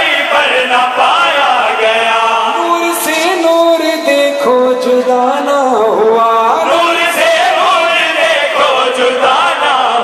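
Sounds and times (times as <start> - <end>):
voices chanting: 0.0 - 2.6, 6.6 - 10.0
man singing devotional melody: 0.0 - 7.6.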